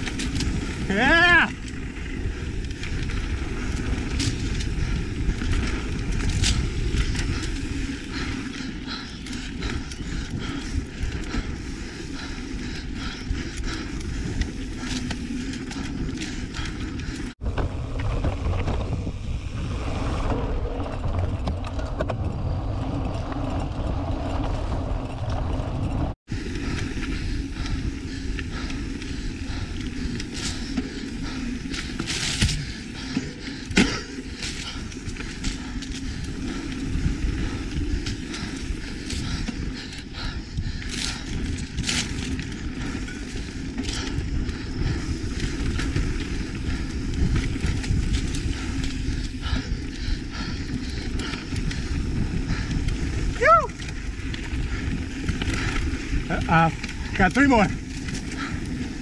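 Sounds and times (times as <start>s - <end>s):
bike clicks and rattles: 0.0s - 59.0s
bike tyres rumbling on dirt: 0.0s - 59.0s
wind over microphone: 0.0s - 59.0s.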